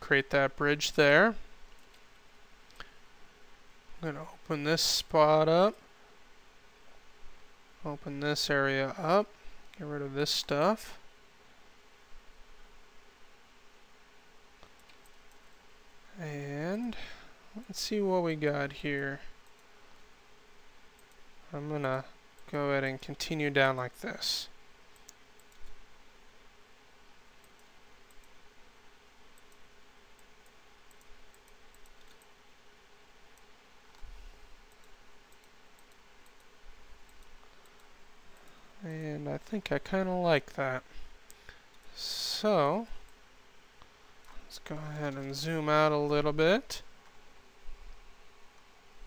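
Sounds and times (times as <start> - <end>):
faint room hiss: 0.0 - 49.0
computer mouse clicks: 1.7 - 2.1, 14.6 - 15.5, 20.9 - 21.2, 24.9 - 25.8, 27.4 - 28.4, 29.4 - 32.3, 34.7 - 38.6.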